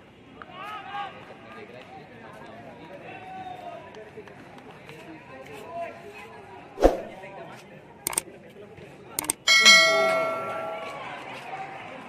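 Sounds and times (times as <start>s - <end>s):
double mouse click: 9.2s - 9.4s
bell ding: 9.2s - 11.3s.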